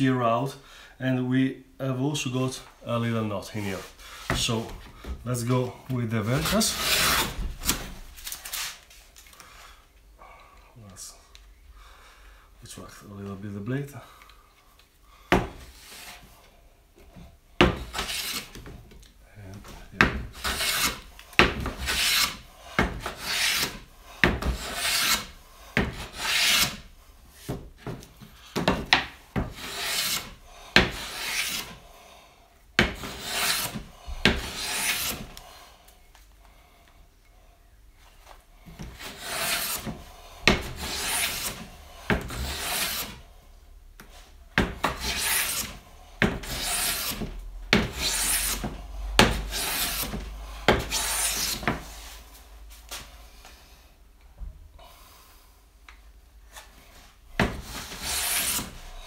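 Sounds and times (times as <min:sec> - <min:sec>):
hand plane shaving wood: 0:06.2 - 0:07.8, 0:17.6 - 0:18.6, 0:19.9 - 0:28.0, 0:28.6 - 0:31.8, 0:32.8 - 0:35.4, 0:38.7 - 0:43.2, 0:44.6 - 0:52.2, 0:57.4 - 0:59.0.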